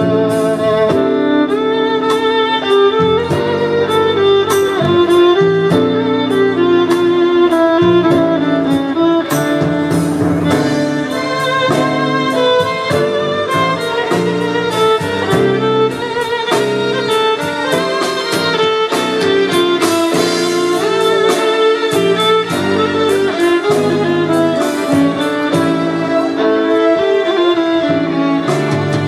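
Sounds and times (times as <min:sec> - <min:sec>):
bass line: 0:00.0 - 0:29.0
steady beat: 0:00.0 - 0:29.0
violin melody with vibrato: 0:00.0 - 0:29.0.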